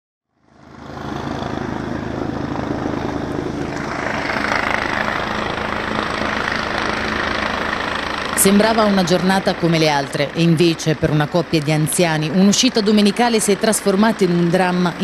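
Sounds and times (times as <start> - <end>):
helicopter hovering: 0.2 - 15.0.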